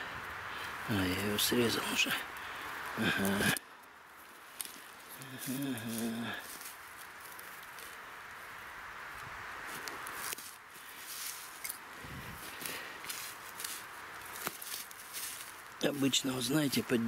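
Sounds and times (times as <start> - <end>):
rustling in dry grass and needles: 0.0 - 17.0.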